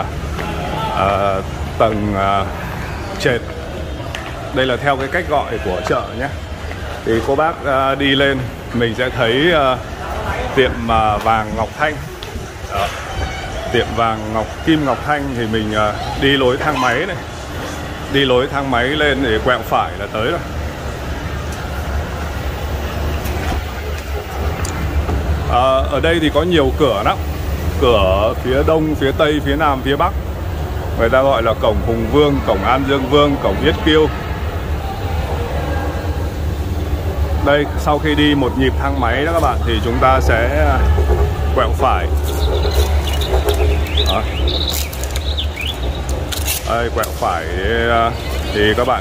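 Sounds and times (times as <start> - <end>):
escalator humming and rumbling: 0.0 - 49.0
small birds chirping: 41.6 - 49.0.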